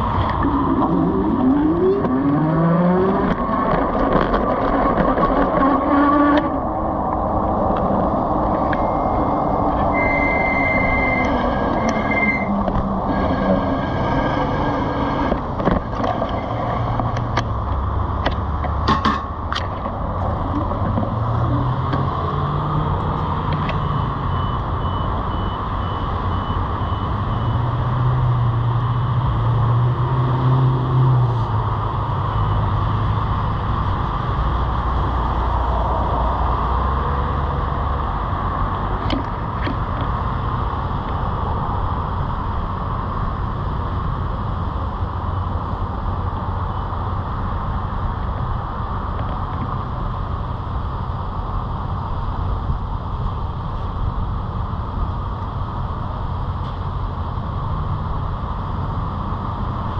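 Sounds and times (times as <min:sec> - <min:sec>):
electric bike riding noise: 0:00.0 - 0:59.9
street traffic: 0:00.0 - 0:59.9
vehicle engines passing: 0:00.0 - 0:59.9
short high beeps: 0:08.8 - 0:12.6.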